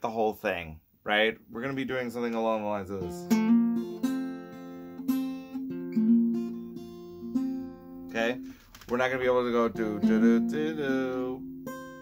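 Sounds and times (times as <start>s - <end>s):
acoustic guitar strumming: 3.0s - 12.0s.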